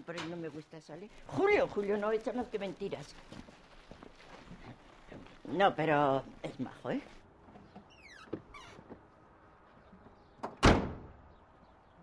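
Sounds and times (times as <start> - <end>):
car door slamming: 10.6 - 11.1.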